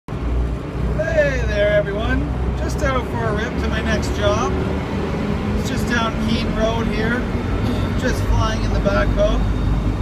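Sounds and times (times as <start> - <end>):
diesel engine rumble: 0.1 - 10.0
man talking: 0.9 - 4.6, 5.6 - 7.3, 7.9 - 9.5.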